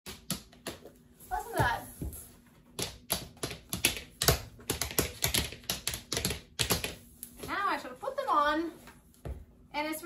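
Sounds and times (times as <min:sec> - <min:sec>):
tap shoes clicking on board: 0:02.8 - 0:07.0.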